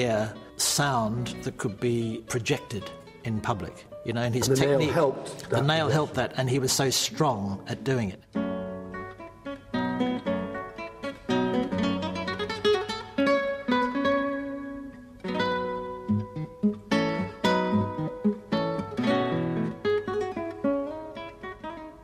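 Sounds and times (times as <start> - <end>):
classical guitar piece: 0.0 - 22.0.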